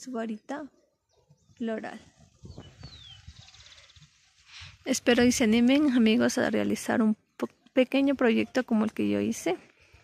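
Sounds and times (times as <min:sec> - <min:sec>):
bird trill: 0:02.4 - 0:04.2.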